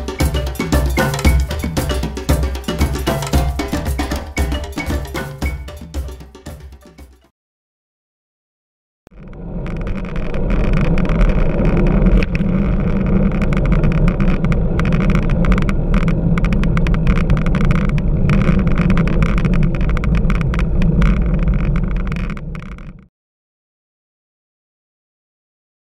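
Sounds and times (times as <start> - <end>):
tyre rumble on road: 9.5 - 23.1.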